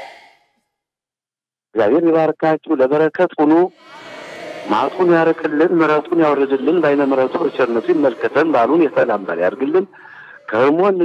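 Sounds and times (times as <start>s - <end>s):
man speaking loudly: 1.8s - 11.0s
broad noisy din: 3.7s - 11.0s.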